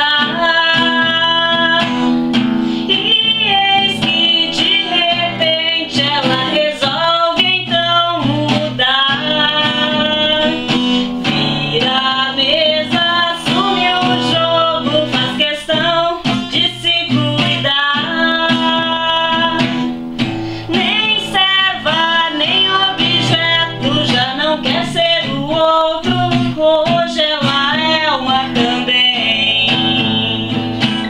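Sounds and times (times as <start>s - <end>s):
woman singing: 0.0s - 20.0s, 20.6s - 31.0s
acoustic guitar strumming: 0.0s - 31.0s.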